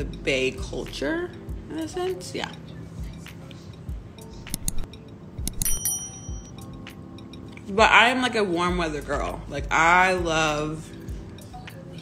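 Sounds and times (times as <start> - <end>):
high bell-like ding: 5.4 - 6.7.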